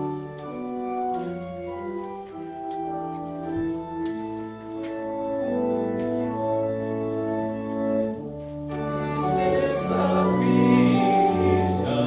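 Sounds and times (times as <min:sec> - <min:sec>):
organ chords: 0:00.0 - 0:12.0
choir singing a hymn: 0:07.4 - 0:12.0.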